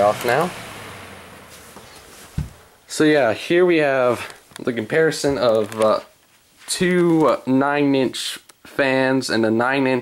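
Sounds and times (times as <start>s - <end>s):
box fan spinning down: 0.0s - 4.3s
low thump: 1.5s - 2.7s.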